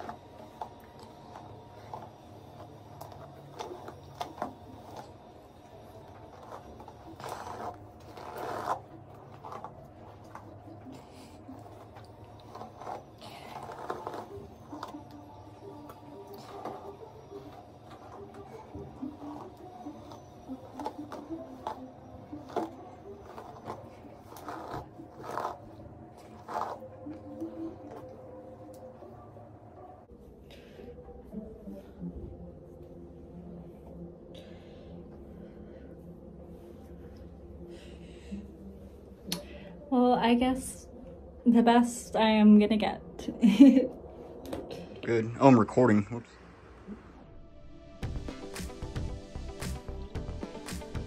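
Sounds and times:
hairbrush rustling through hair: 0.0 - 28.1.

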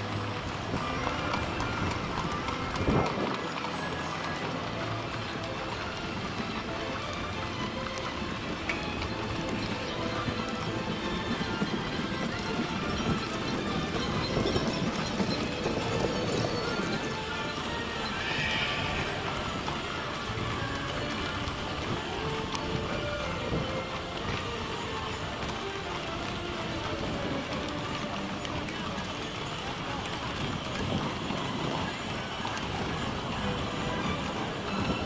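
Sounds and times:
horse hooves clip-clopping on asphalt: 0.0 - 35.0.

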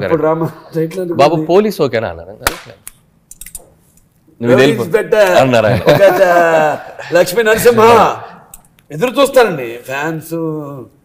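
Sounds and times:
man talking: 4.4 - 11.0.

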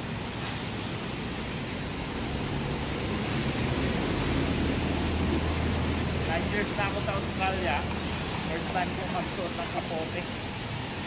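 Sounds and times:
truck engine drone: 0.0 - 9.6
tyre hiss on wet road: 0.0 - 11.0.

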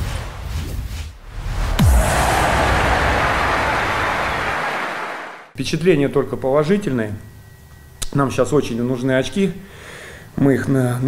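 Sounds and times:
whooshing wash of noise: 1.2 - 5.4.

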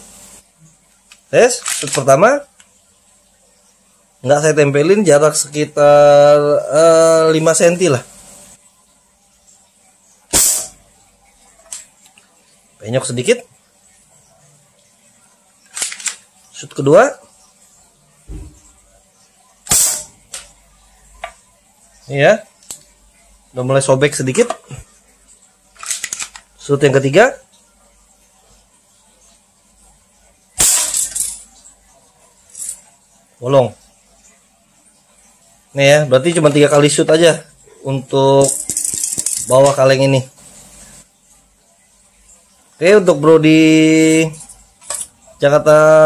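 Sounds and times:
toy pistol shot: 10.3 - 10.7, 19.7 - 20.4, 30.6 - 31.2
pellet hitting metal can: 10.3 - 10.8, 19.7 - 20.5, 30.6 - 31.4.

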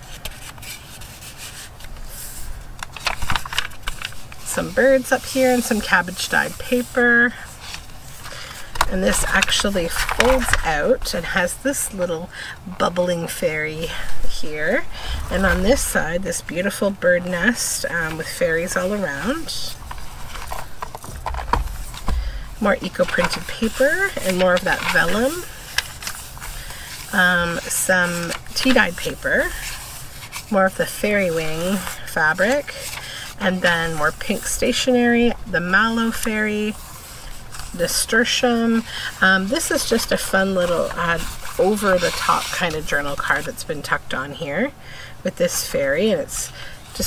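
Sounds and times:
scratchy paper strokes: 0.0 - 11.8, 13.4 - 43.7
paper rustling and rubbing: 0.0 - 12.1, 12.7 - 44.7.

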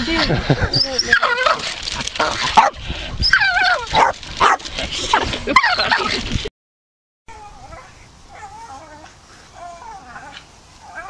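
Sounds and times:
dog whining: 3.2 - 4.1.

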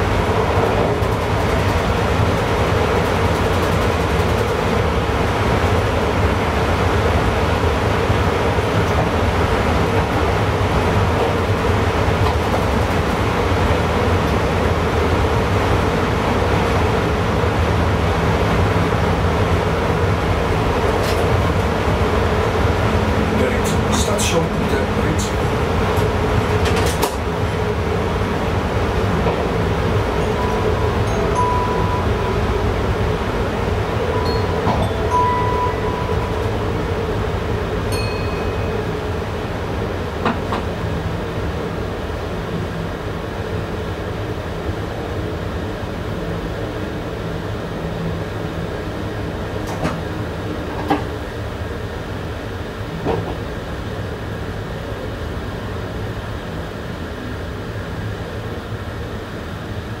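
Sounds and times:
train rumble and hum: 0.0 - 60.0.

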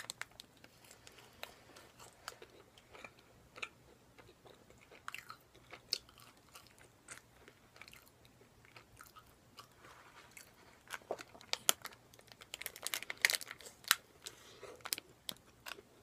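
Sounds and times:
chewing crunchy fried food: 0.1 - 16.0.

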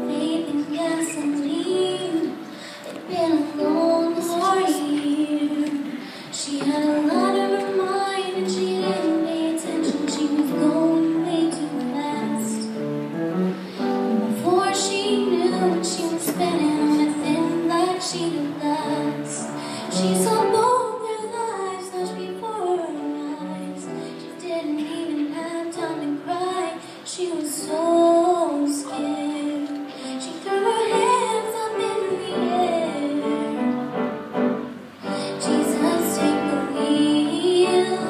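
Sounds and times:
girl singing: 0.0 - 12.8, 14.0 - 33.8, 35.0 - 38.0
acoustic guitar: 0.0 - 38.0.

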